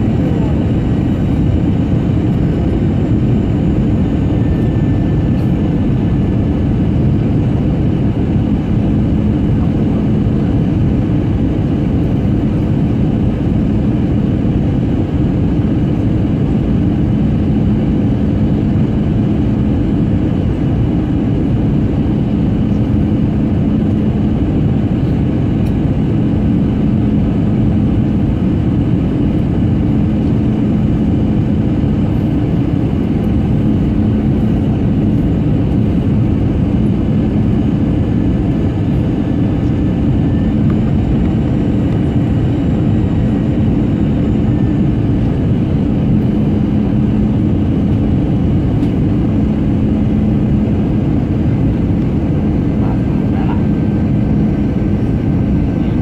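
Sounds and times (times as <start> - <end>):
airliner cabin engine rumble: 0.0 - 56.0
constant low hum: 0.0 - 56.0.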